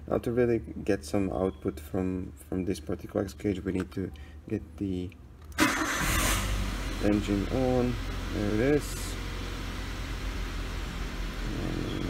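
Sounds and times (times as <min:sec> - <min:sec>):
car engine idling: 0:05.6 - 0:12.0.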